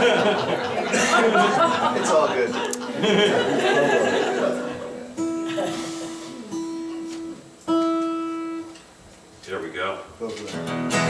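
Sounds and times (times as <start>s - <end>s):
acoustic guitar string plucked: 4.4s - 8.9s, 10.4s - 11.0s.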